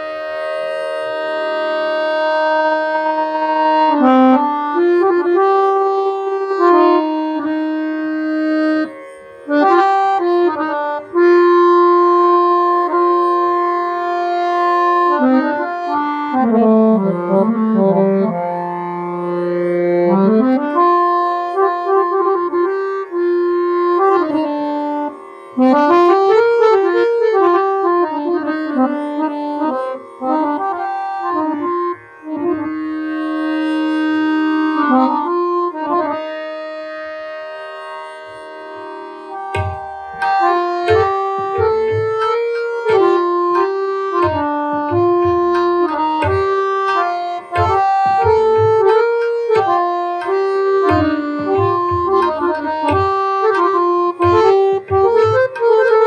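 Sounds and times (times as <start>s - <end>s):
harmonium holding a note: 0.0s - 56.0s.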